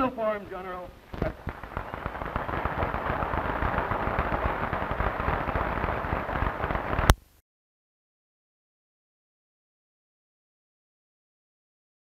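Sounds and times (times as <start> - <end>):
audience applauding: 1.3 - 7.1.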